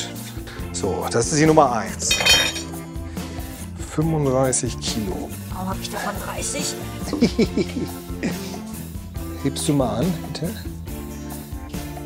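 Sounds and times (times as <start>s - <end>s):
background music held chord: 0.0s - 12.0s
metallic clink: 2.1s - 2.7s.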